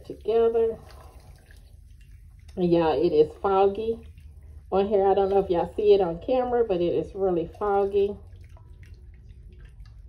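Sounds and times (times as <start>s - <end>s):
liquid swishing: 0.0s - 6.6s, 7.2s - 10.0s.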